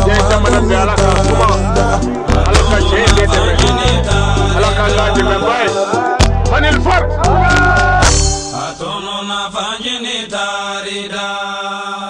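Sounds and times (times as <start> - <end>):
heavy bass: 0.0 - 8.8
man chanting over music: 0.0 - 12.0.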